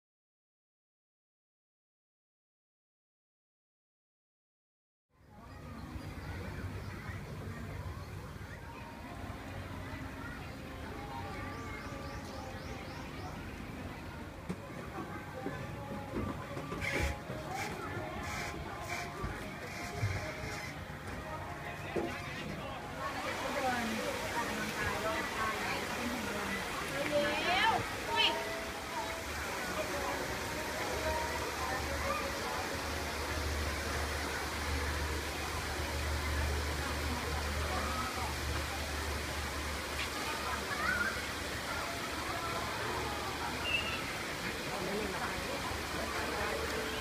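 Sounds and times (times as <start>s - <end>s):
music: 5.1s - 47.0s
faint voices: 5.2s - 47.0s.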